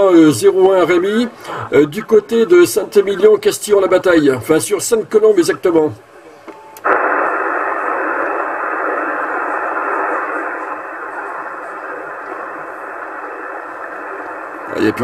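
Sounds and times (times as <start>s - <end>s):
radio static hiss: 0.0s - 15.0s.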